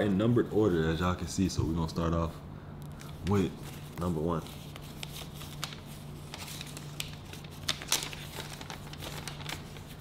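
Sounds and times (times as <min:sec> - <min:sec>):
steady low hum: 0:00.0 - 0:10.0
paper rustling and crinkling: 0:03.0 - 0:10.0.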